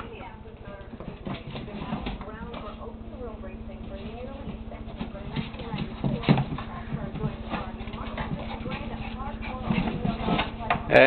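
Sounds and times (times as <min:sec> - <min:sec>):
paws and claws scrabbling: 0:00.7 - 0:11.0
knocks and bumps: 0:01.0 - 0:10.9
dogs vocalizing: 0:04.2 - 0:10.9.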